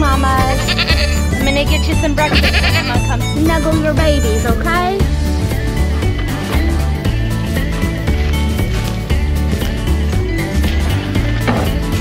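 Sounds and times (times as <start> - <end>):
background music with bass line: 0.0 - 12.0
goat bleating: 0.4 - 1.4, 2.1 - 3.4.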